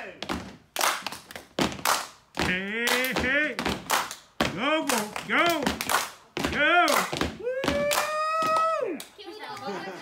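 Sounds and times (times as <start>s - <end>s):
foot stomps: 0.1s - 8.9s
hand claps: 6.8s - 9.2s.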